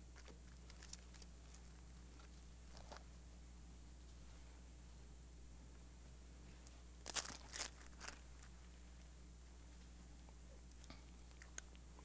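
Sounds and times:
faint low hum: 0:00.0 - 0:12.0
pages being turned: 0:07.0 - 0:08.2.

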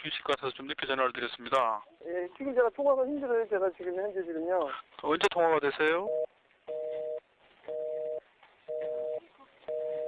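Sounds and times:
telephone busy tone beeps: 0:06.0 - 0:10.0.

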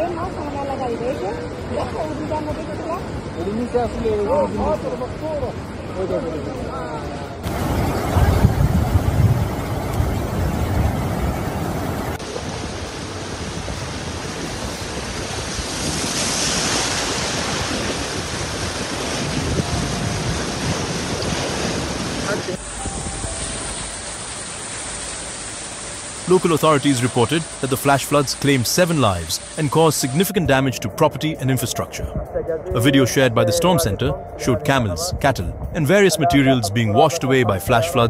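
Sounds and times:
floodwater rushing: 0:00.0 - 0:34.9
wind buffeting microphone: 0:07.4 - 0:23.8.

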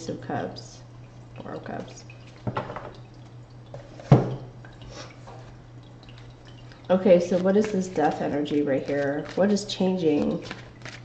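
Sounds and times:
water trickling and dripping: 0:00.0 - 0:11.0
cards shuffling and rustling: 0:07.3 - 0:11.0.

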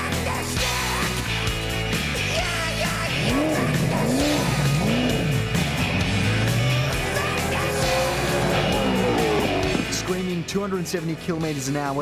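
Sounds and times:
backing music: 0:00.0 - 0:12.0
race car engine passing: 0:03.2 - 0:10.0.

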